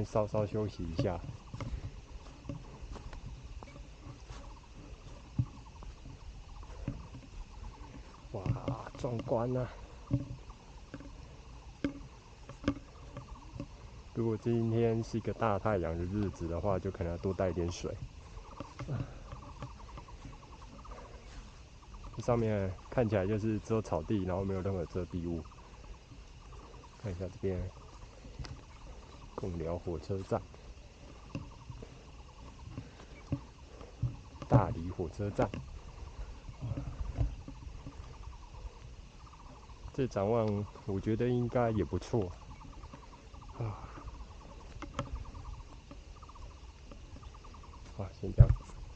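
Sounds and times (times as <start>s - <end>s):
faint rapid chirping: 0.0s - 48.9s
low wind rumble: 0.0s - 48.9s
animal calling in pulsed trains: 9.4s - 48.1s
cow lowing: 18.4s - 21.3s.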